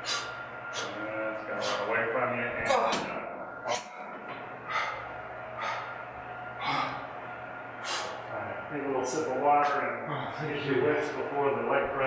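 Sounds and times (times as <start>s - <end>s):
man breathing heavily: 0.0s - 2.0s, 3.7s - 8.3s.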